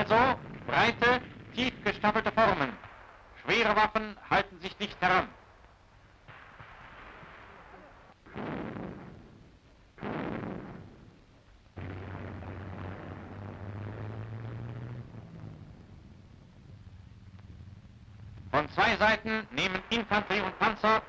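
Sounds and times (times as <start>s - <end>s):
heavy explosive blasts: 0.0s - 4.0s, 6.2s - 21.0s
long steady rumble with low hum: 5.3s - 20.8s.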